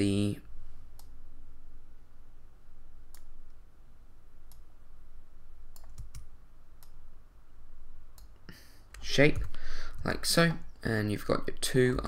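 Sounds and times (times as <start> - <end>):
faint low hum: 0.0 - 12.0
mouse and keyboard clicks: 5.7 - 7.0.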